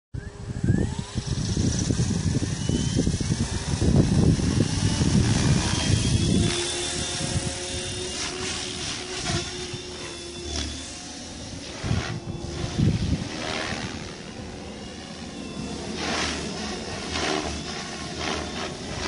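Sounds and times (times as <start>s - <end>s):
rc helicopter rotor whine: 0.2s - 19.0s.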